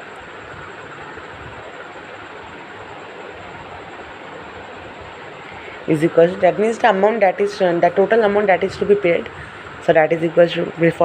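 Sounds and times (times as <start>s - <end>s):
even hiss: 0.0s - 11.0s
faint high-pitched whine: 0.0s - 11.0s.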